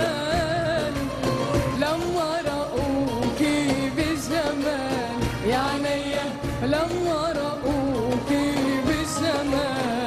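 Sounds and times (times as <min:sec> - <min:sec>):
band accompaniment with steady beat: 0:00.0 - 0:10.0
woman singing into microphone: 0:00.0 - 0:10.0.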